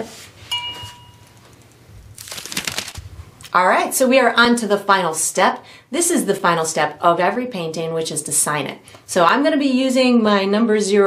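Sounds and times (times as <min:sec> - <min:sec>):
paper towel crinkling: 0:02.0 - 0:03.4.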